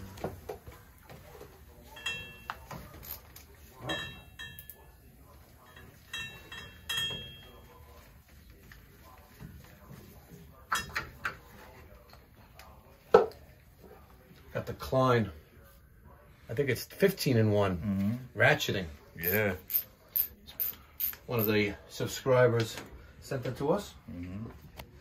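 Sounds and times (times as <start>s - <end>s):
metal tools clinking: 1.9s - 5.0s, 5.6s - 7.7s.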